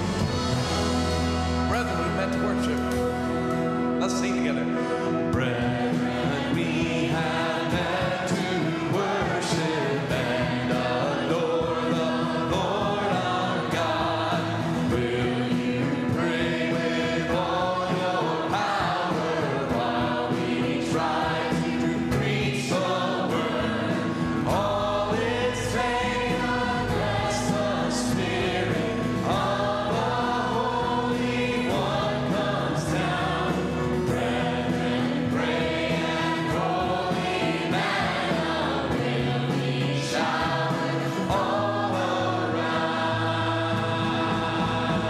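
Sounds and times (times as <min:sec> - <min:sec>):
church choir singing: 0:00.0 - 0:45.0
instrumental backing: 0:00.0 - 0:45.0.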